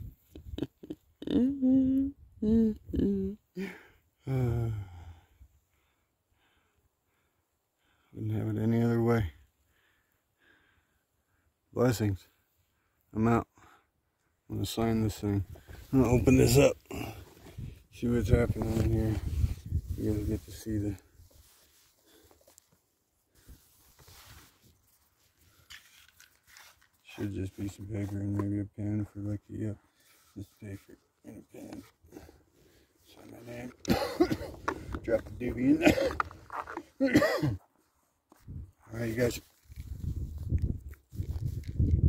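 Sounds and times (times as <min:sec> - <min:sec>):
wind buffeting microphone: 0:39.8 - 0:42.0.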